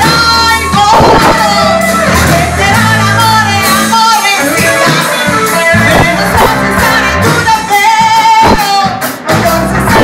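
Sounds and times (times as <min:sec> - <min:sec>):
acoustic and electric guitars: 0:00.0 - 0:10.0
drum kit: 0:00.0 - 0:10.0
woman singing into microphone: 0:00.0 - 0:10.0.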